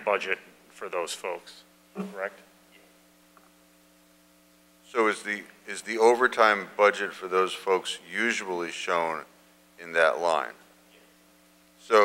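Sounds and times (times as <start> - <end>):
man speaking: 0.0 - 2.5, 4.9 - 10.7, 11.8 - 12.0
faint electrical hum: 0.0 - 12.0.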